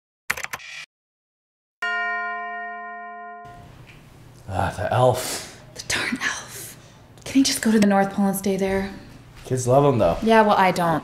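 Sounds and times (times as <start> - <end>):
bell-like chime: 1.8 - 3.6.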